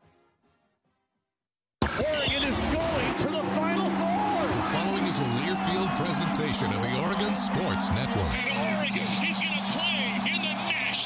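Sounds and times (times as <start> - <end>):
voices: 2.0 - 11.0.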